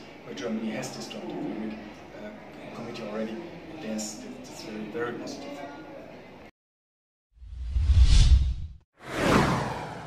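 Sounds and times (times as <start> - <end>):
whoosh sound effect: 7.5 - 10.0.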